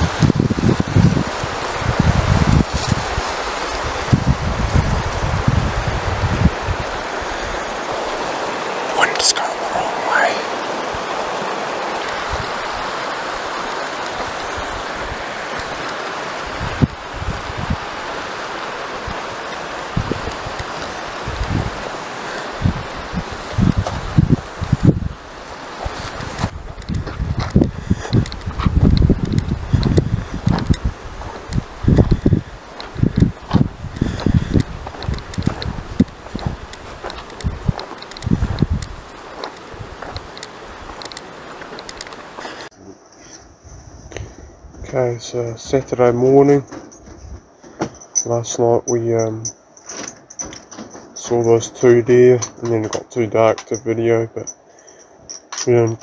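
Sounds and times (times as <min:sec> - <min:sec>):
river rushing: 0:00.0 - 0:42.7.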